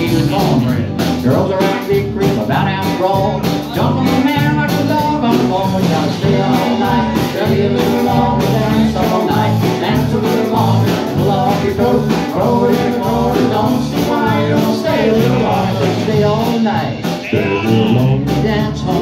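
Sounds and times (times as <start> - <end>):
country-rock band playing: 0.0 - 19.0
man singing: 0.0 - 19.0.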